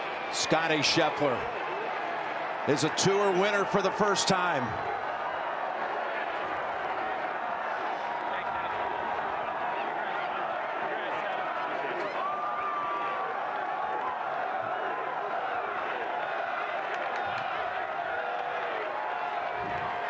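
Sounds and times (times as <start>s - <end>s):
crowd cheering and shouting: 0.0s - 20.0s
people clapping: 0.0s - 20.0s.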